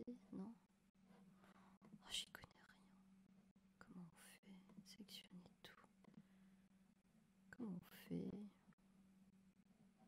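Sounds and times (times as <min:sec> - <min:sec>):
low steady hum: 0:00.0 - 0:10.0
person whispering: 0:02.0 - 0:03.0, 0:03.8 - 0:05.9, 0:07.5 - 0:08.6.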